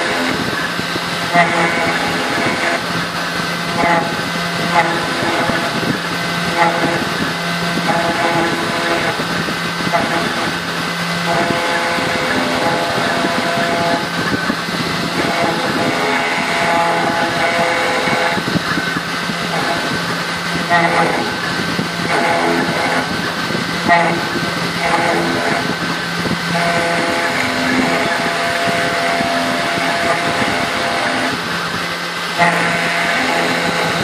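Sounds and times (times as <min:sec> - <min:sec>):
motors humming in changing tones: 0:00.0 - 0:34.0
router spindle whine: 0:00.0 - 0:34.0.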